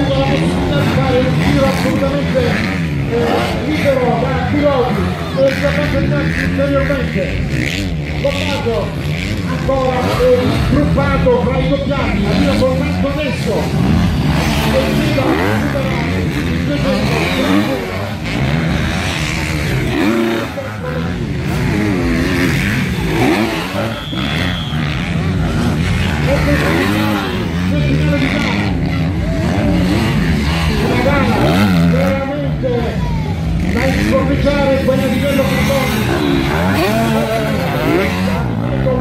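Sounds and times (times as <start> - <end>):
dirt bike engines revving: 0.0 - 39.0.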